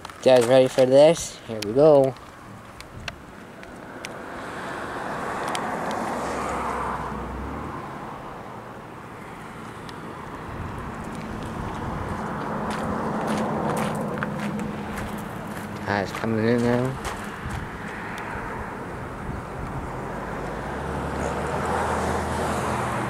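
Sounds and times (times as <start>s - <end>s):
traffic rushing past: 0.0s - 23.0s
low engine hum: 2.3s - 23.0s.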